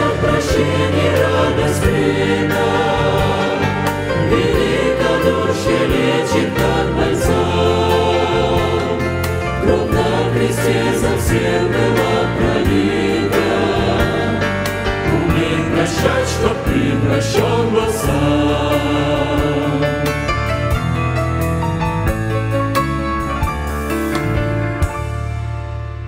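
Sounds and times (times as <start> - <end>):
mixed choir singing a hymn: 0.0 - 20.7
low bass accompaniment: 0.0 - 26.0.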